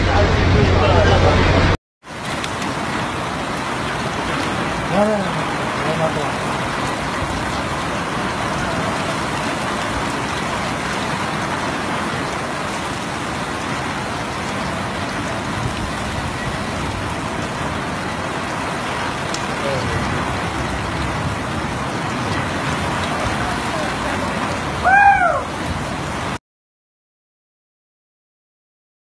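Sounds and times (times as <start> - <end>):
heavy rain pouring: 0.0 - 26.4.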